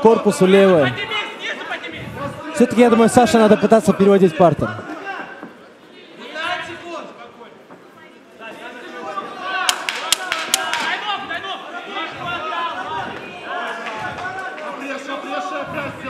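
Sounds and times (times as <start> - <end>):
voices shouting in a hall: 0.0 - 16.0.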